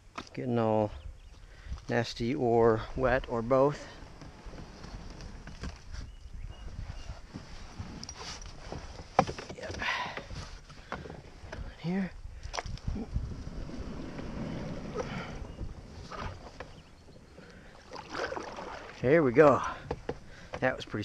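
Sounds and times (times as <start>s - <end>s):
paddle strokes splashing in water: 13.4s - 20.6s
paddle knocking against kayak hull: 19.6s - 20.8s.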